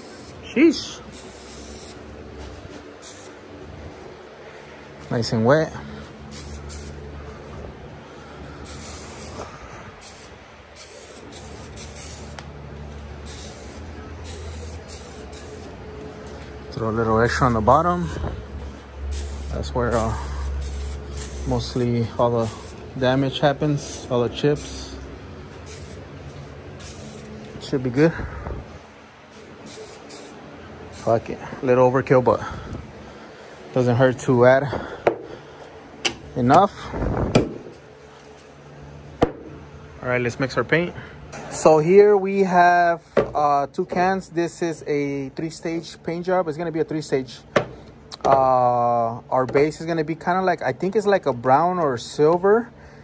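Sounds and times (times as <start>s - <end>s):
aerosol spray hissing: 0.0s - 2.1s, 3.0s - 3.4s, 6.2s - 7.0s, 8.6s - 12.5s, 13.2s - 15.8s, 17.3s - 18.2s, 19.1s - 26.0s, 26.8s - 27.3s, 29.6s - 31.3s
steady low hum: 0.0s - 53.0s.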